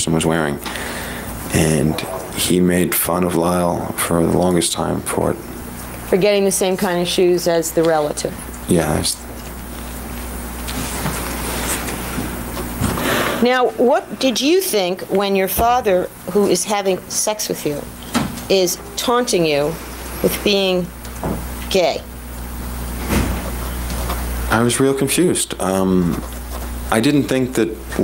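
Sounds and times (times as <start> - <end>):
low electrical hum: 0.0 - 28.0.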